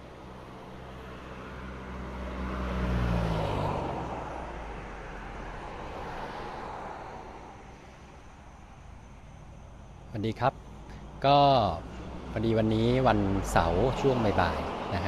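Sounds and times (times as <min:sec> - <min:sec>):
vehicle engine passing by: 0:00.0 - 0:07.6, 0:11.1 - 0:15.0
tyre and road noise: 0:00.0 - 0:15.0.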